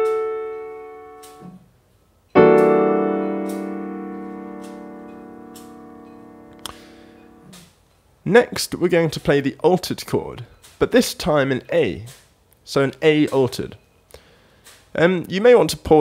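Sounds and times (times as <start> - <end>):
piano chord: 0.0 - 1.6, 2.4 - 7.5.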